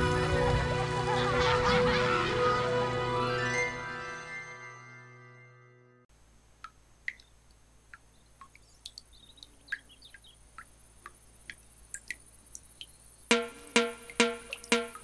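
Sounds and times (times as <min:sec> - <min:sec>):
bird-like chirps: 0:08.0 - 0:10.7
percussive musical jingle: 0:13.3 - 0:15.0.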